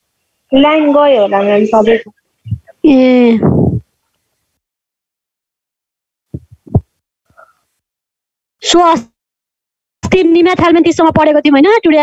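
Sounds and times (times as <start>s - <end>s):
muffled low thumps: 2.4s - 2.7s, 3.3s - 3.9s, 6.3s - 6.9s.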